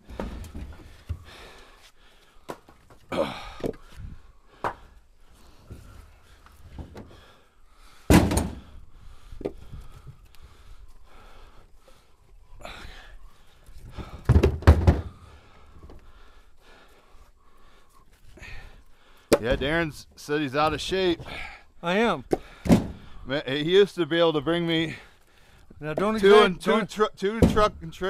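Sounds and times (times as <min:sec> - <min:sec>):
firewood thunking onto a pile: 0:00.0 - 0:01.2, 0:08.1 - 0:08.7, 0:14.0 - 0:15.1, 0:22.3 - 0:23.0
wood shuffling: 0:00.0 - 0:04.0.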